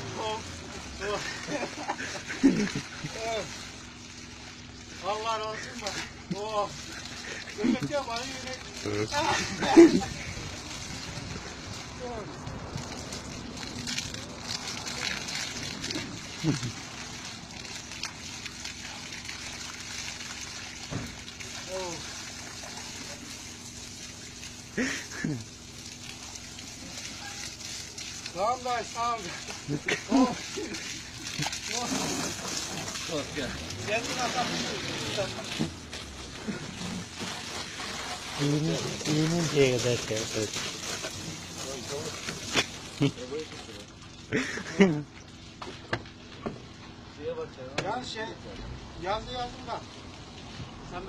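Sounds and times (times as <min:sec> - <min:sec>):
water spraying from spray wand: 0:00.0 - 0:46.6.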